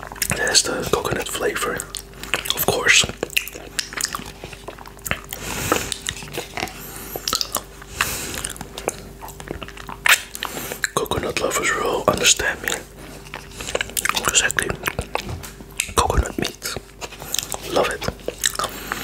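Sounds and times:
wet lip smacks and clicks: 1.0s - 11.5s, 12.1s - 19.0s.

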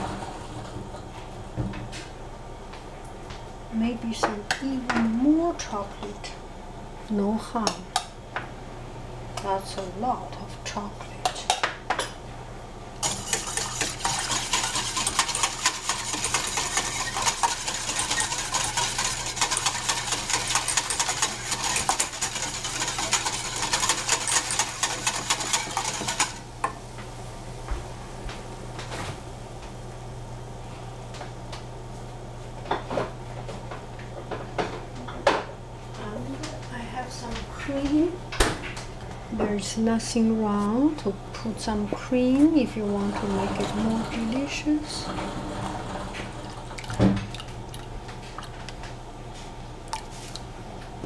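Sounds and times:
steady low hum: 0.0s - 51.0s
utensil scraping metal pot: 13.0s - 26.4s, 42.8s - 46.7s.

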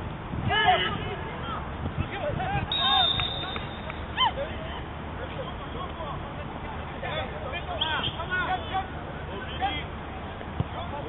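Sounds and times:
players shouting: 2.4s - 4.7s
referee whistle blast: 2.7s - 4.1s.

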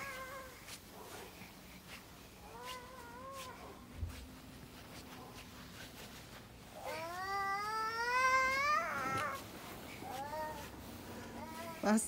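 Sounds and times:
footsteps crunching in snow: 0.0s - 12.0s
young child crying: 6.8s - 9.4s.

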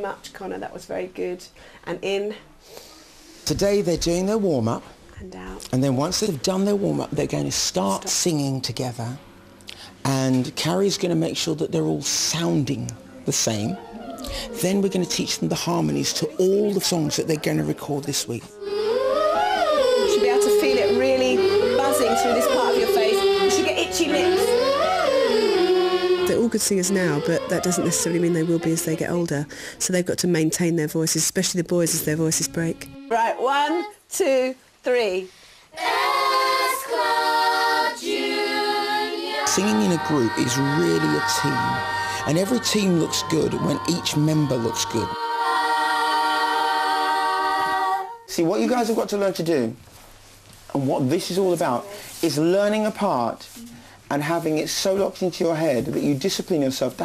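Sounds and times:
children singing vocal warm-up: 18.2s - 29.2s, 35.7s - 48.3s.

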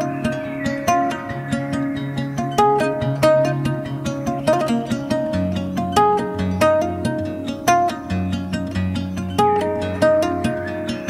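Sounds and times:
plucked string melody: 0.0s - 11.0s.

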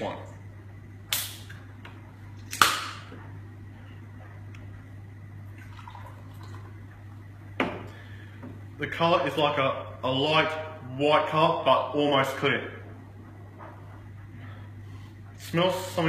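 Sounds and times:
drink pouring and fizzing: 5.5s - 6.8s.

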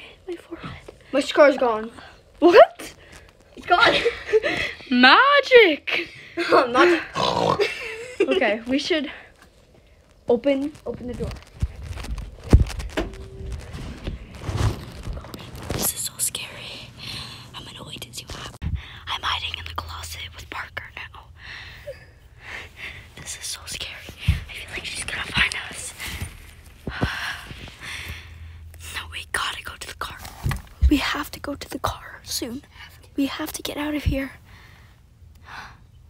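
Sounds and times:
whispering voices: 23.2s - 26.0s.

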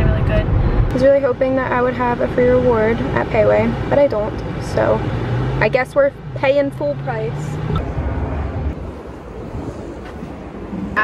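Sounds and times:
wind buffeting microphone: 0.0s - 5.6s, 6.2s - 11.0s.

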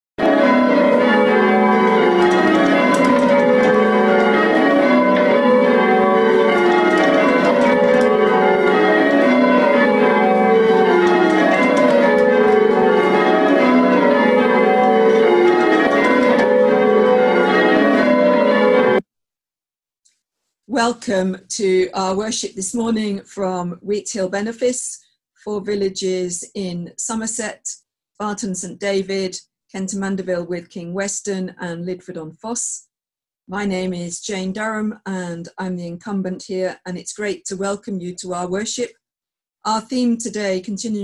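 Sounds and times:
church bells change ringing: 0.2s - 19.0s.

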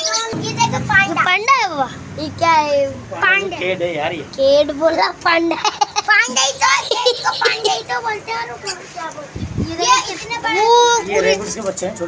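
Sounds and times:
people talking and calling: 0.0s - 12.0s.

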